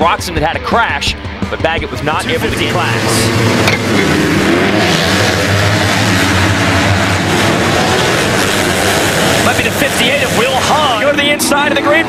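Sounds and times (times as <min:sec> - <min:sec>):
motocross bikes revving: 0:01.5 - 0:12.0.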